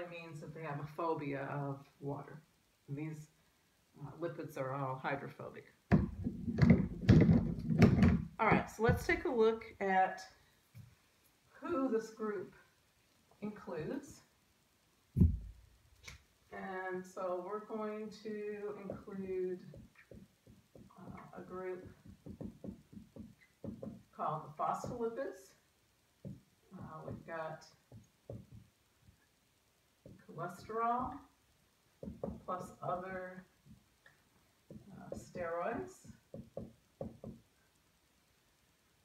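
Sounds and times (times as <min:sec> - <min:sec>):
loud knocks and thuds: 0:05.9 - 0:09.2, 0:15.2 - 0:15.6, 0:19.7 - 0:24.1, 0:32.0 - 0:32.6.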